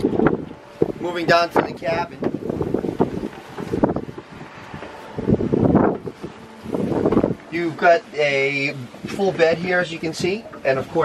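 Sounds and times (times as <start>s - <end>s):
wind on microphone: 0.0s - 7.8s.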